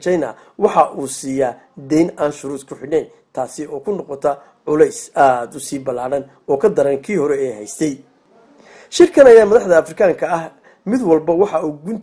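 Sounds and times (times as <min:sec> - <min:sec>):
narrator speaking: 0:00.0 - 0:12.0
breath in: 0:00.4 - 0:00.6, 0:08.5 - 0:08.9, 0:10.6 - 0:10.9.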